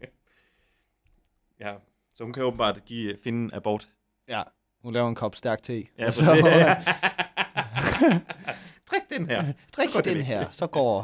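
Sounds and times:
men snickering and chuckling: 6.2 - 8.8.

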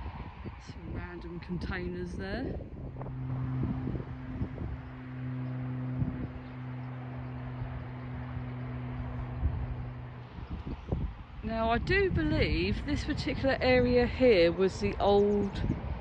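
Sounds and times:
low-pitched hum: 0.0 - 16.0
wind noise on microphone: 0.0 - 16.0.

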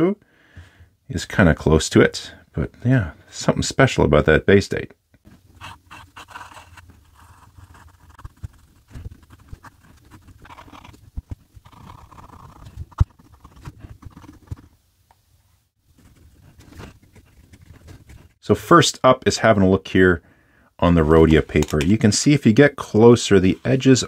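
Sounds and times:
pen nib scratching on paper: 5.6 - 14.7, 16.0 - 18.4.

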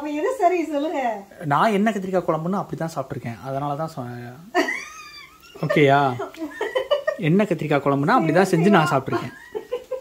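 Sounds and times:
high-pitched vocal cries: 8.5 - 9.3.

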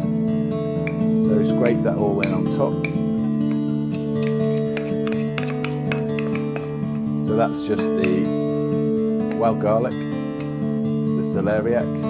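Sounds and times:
acoustic guitar picking: 0.0 - 12.0.

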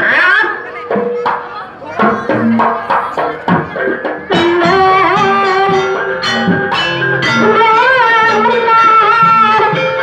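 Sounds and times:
drum strokes: 0.9 - 10.0.

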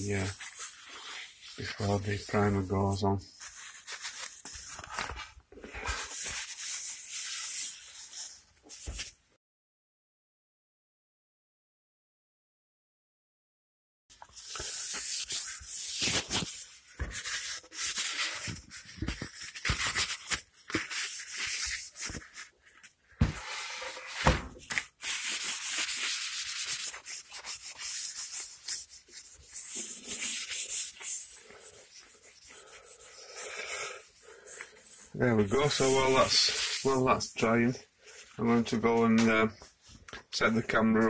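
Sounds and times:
paper wipe scuffing wood: 0.0 - 9.2, 14.4 - 37.1.

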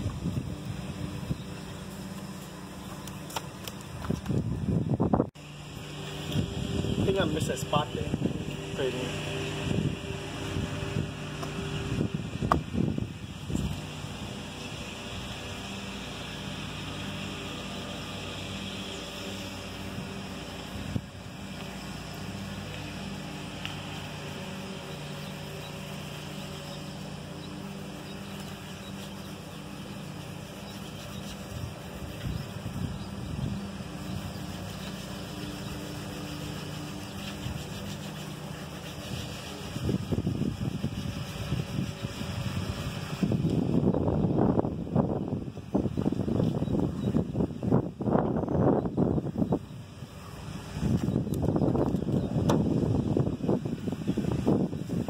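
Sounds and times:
wind on microphone: 0.0 - 1.6, 3.8 - 5.4, 6.2 - 8.8, 9.4 - 15.6, 19.7 - 21.3, 30.6 - 55.0
low engine hum: 0.0 - 55.0.

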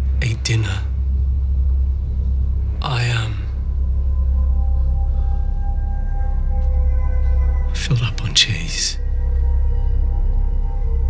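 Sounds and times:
low rumble: 0.0 - 11.0.

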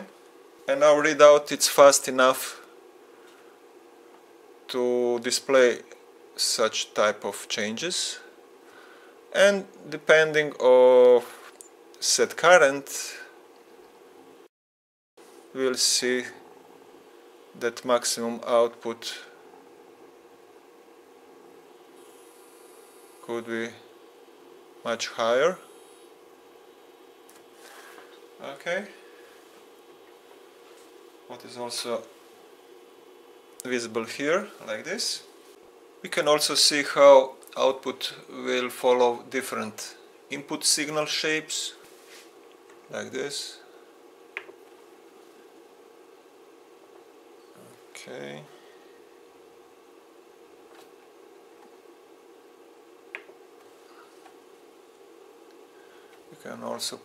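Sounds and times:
faint steady hum: 0.0 - 14.5, 15.2 - 57.0
soft rustle: 41.8 - 42.5.

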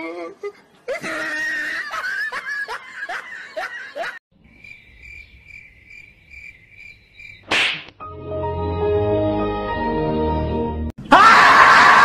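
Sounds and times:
laughter: 0.9 - 4.2
music: 8.0 - 10.9.

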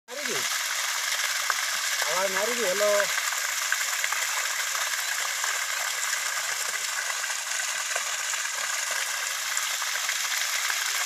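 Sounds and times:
water gushing from a pipe: 0.1 - 11.0
water splashing on ground: 0.1 - 11.0.

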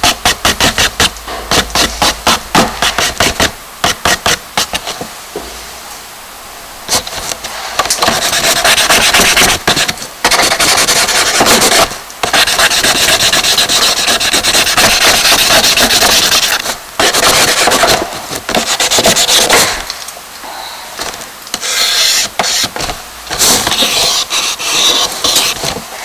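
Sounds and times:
charcoal scratching on paper: 0.0 - 5.0, 7.8 - 19.7, 21.6 - 25.7.

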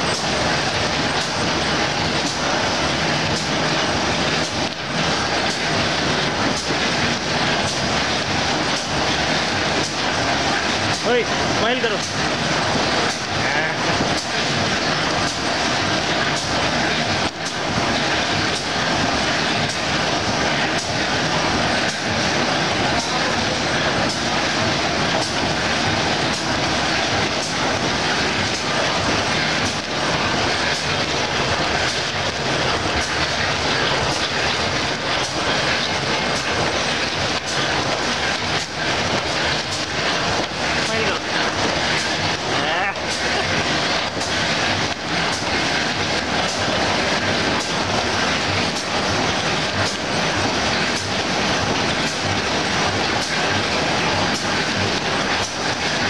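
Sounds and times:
machine clatter: 0.0 - 56.0.

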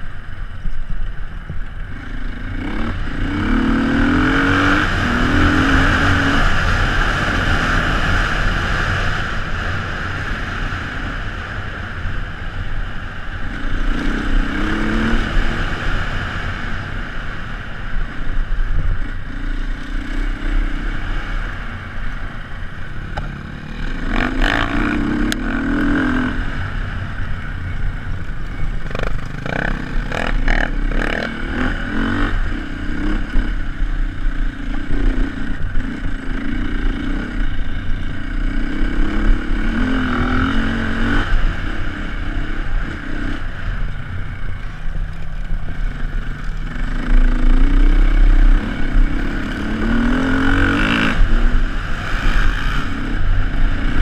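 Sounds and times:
dirt bike engine revving: 2.0 - 9.1, 23.2 - 27.0, 28.5 - 43.9, 45.3 - 54.0.

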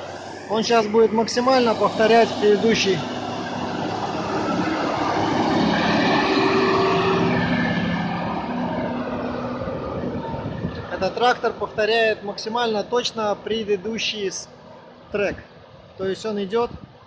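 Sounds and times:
tractor diesel engine driving past: 0.0 - 15.0.

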